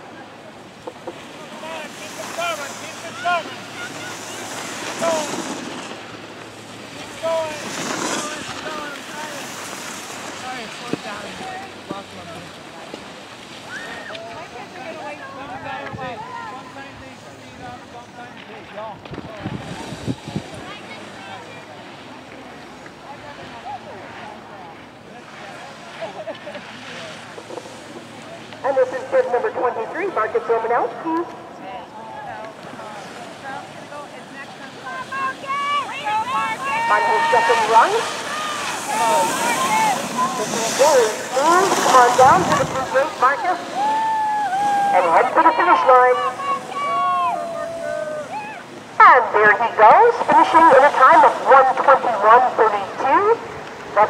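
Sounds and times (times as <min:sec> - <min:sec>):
people calling out: 0:02.2 - 0:05.4, 0:34.8 - 0:53.3
wind noise on microphone: 0:19.0 - 0:20.8, 0:42.0 - 0:43.0.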